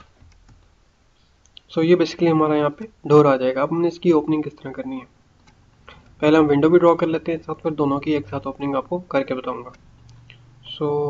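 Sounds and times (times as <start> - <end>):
computer mouse clicks: 0.0 - 0.7, 5.4 - 6.2
man's voice: 6.2 - 9.8.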